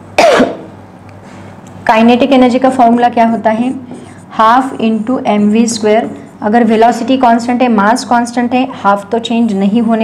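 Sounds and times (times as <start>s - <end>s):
woman coughing: 0.2s - 0.6s.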